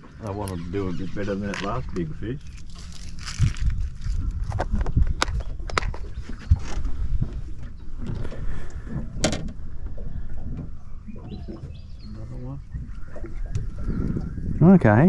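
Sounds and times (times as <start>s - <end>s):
low rumble: 0.7s - 15.0s.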